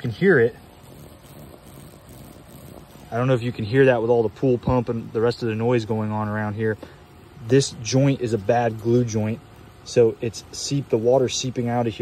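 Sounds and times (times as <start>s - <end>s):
pool pump running: 0.0s - 12.0s.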